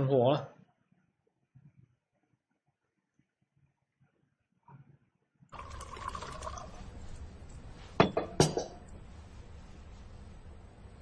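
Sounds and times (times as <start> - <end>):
low background hum: 5.6 - 11.0
glassware clinking on table: 8.0 - 8.8.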